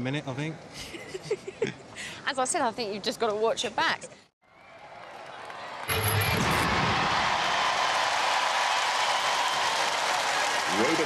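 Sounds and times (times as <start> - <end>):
audience cheering and applauding: 4.5 - 11.0.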